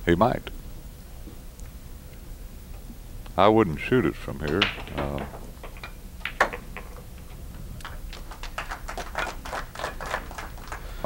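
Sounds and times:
pool balls clicking and rolling: 0:04.0 - 0:11.0
cue tip striking ball: 0:04.5 - 0:07.1.

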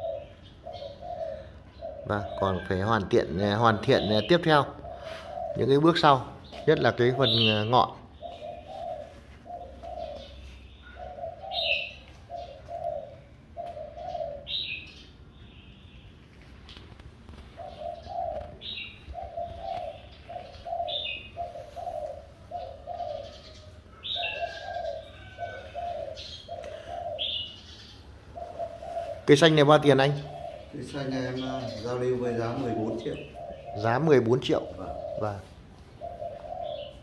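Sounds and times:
dove cooing: 0:00.0 - 0:15.3, 0:16.9 - 0:37.0
small birds chirping: 0:00.0 - 0:37.0.

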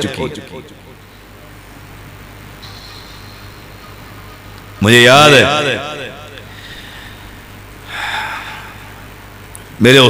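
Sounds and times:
man's voice echoing over loudspeaker: 0:00.0 - 0:01.0, 0:04.8 - 0:06.6, 0:09.8 - 0:10.0
low electrical hum and hiss: 0:00.0 - 0:10.0.

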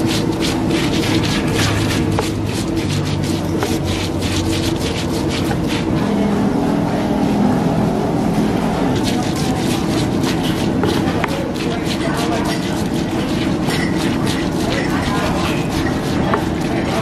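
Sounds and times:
stone pestle crushing in mortar: 0:00.0 - 0:06.0, 0:08.9 - 0:17.0
steady low hum: 0:00.0 - 0:17.0.

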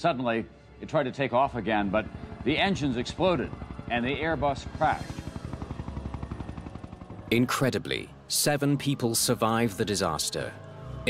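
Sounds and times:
helicopter rotor chopping: 0:01.4 - 0:10.7.

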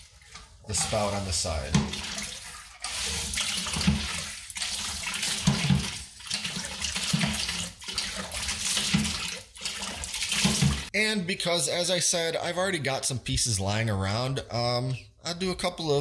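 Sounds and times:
water gushing into a bucket: 0:00.0 - 0:10.9.

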